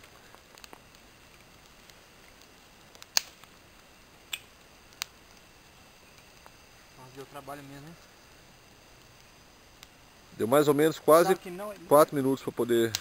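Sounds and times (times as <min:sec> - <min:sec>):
campfire crackling pops: 0:00.0 - 0:13.0.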